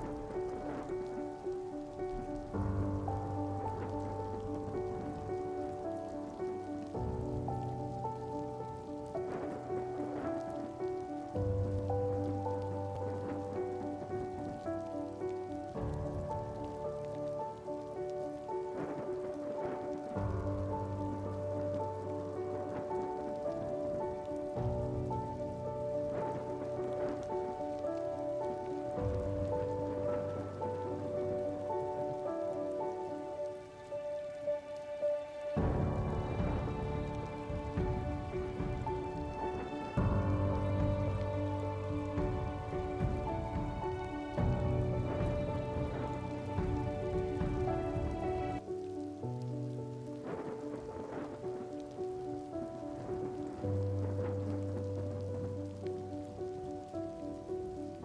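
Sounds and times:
slow music of held chords: 0.0s - 58.0s
steady rain: 0.0s - 58.0s.

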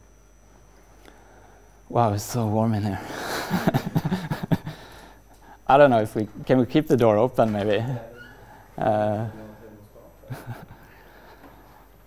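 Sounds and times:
man laughing: 3.0s - 5.1s, 10.2s - 11.0s.

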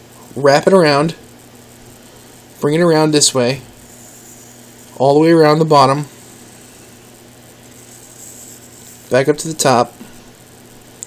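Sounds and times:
low mains hum: 0.0s - 11.0s
steady faint hiss: 0.0s - 11.0s.

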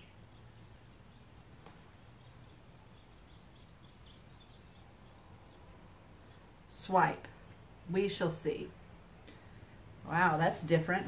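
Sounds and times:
soft bird chirps: 0.0s - 8.1s.

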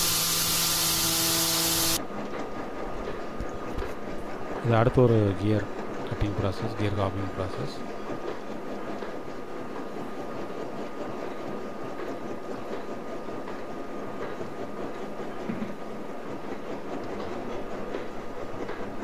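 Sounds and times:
machine running with clatter: 0.0s - 19.0s.

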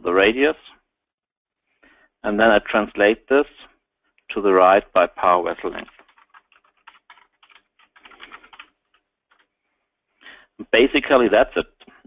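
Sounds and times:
typing on computer keyboard: 5.8s - 9.5s.

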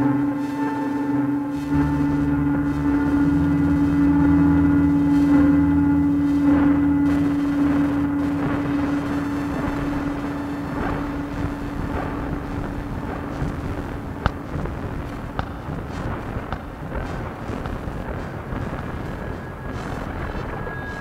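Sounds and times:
deep synthesizer tones: 0.0s - 21.0s
synthesizer drone: 0.0s - 21.0s.

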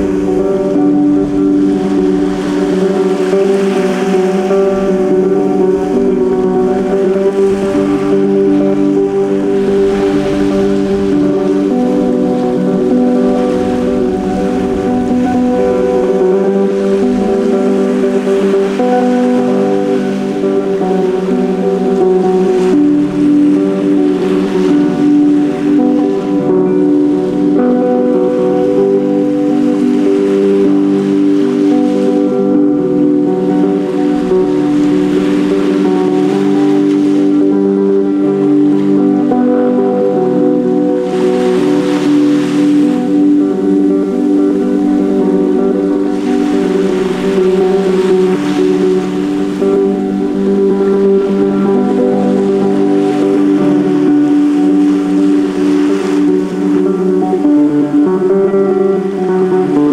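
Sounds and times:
droning music: 0.0s - 59.9s
ocean surf washing: 0.0s - 59.9s.

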